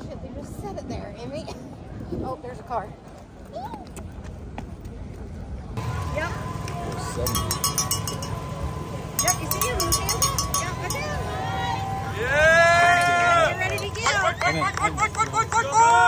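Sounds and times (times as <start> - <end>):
spectators' voices: 0.0 - 16.0.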